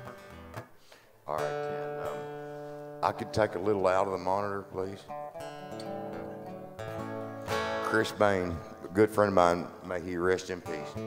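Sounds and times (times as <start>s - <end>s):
acoustic guitar chord strummed: 0.0s - 11.0s
acoustic guitar note plucked: 0.0s - 11.0s.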